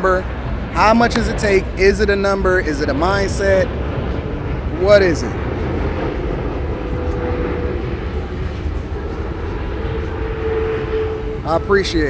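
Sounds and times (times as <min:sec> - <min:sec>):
outdoor rumble and hiss: 0:00.0 - 0:12.0.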